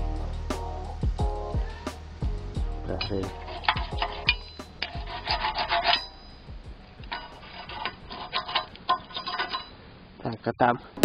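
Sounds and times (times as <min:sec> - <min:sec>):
metal skimmer scraping a pot: 0:02.8 - 0:09.8.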